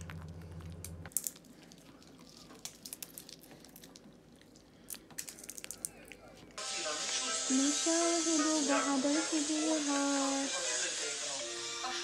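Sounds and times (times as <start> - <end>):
low hum: 0.0 - 1.1.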